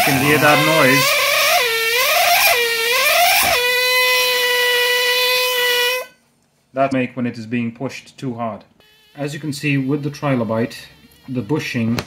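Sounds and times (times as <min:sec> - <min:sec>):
pneumatic air scribe buzzing: 0:00.0 - 0:06.2.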